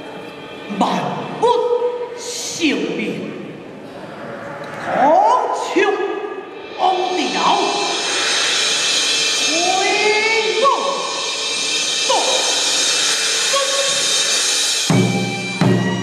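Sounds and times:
ringing cymbals and percussion: 0:04.2 - 0:16.0.

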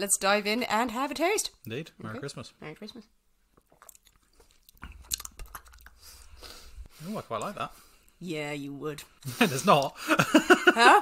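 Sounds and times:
lip smacks: 0:03.6 - 0:06.1
mouth sipping and tasting: 0:03.6 - 0:07.0.

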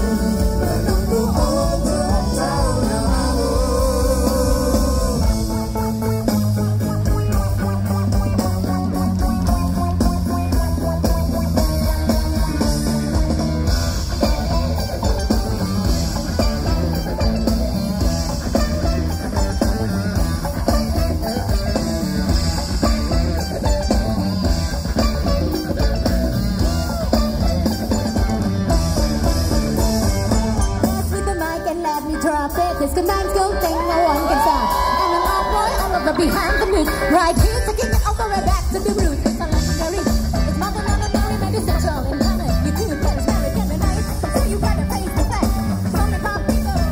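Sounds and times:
live band over pa: 0:00.0 - 0:46.9.

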